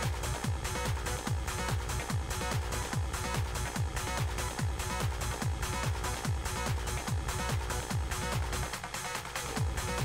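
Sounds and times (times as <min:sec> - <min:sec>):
deep kick drum: 0:00.0 - 0:10.0
hard techno music: 0:00.0 - 0:10.0.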